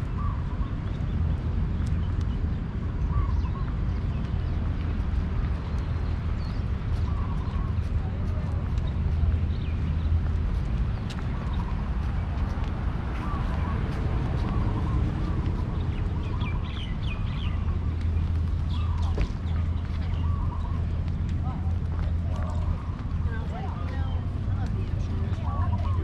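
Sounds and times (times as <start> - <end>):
small birds chirping: 0.0 - 26.0
steady low rumble: 0.0 - 26.0
faint voices: 18.8 - 26.0.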